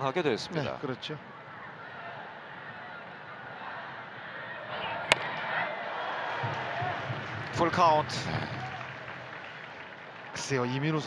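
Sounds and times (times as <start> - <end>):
stadium crowd voices and shouts: 0.0 - 11.0
sharp crack of ball: 5.1 - 5.5.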